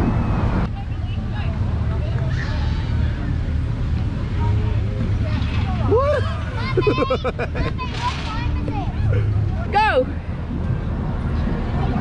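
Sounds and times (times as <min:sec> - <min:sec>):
crowd babble: 0:00.0 - 0:12.0
steady low rumble: 0:00.0 - 0:12.0
children laughing and squealing: 0:05.7 - 0:09.7.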